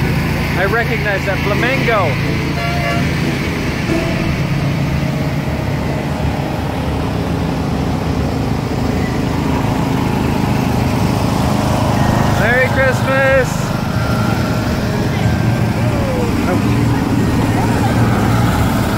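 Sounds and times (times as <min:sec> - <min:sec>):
small engines humming: 0:00.0 - 0:18.9.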